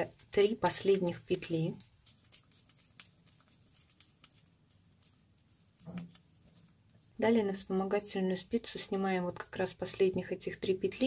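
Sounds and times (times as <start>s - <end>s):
knitting needles clicking: 0.4s - 6.2s.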